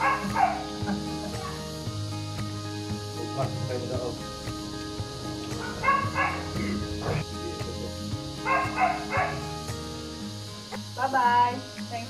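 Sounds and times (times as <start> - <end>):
dog yipping: 0.0 - 0.7, 5.8 - 6.6, 8.5 - 9.4
background music: 0.0 - 12.0.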